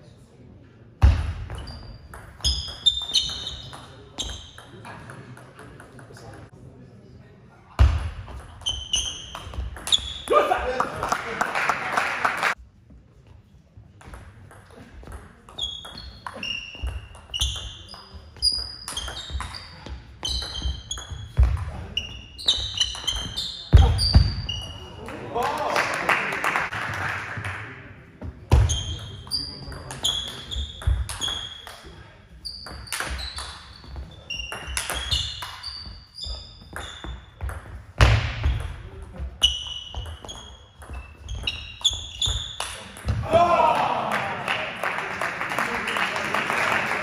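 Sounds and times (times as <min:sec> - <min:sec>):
shoes squeaking on floor: 0:01.4 - 0:04.8, 0:08.3 - 0:10.3, 0:14.7 - 0:25.0, 0:28.5 - 0:38.6, 0:39.2 - 0:42.7.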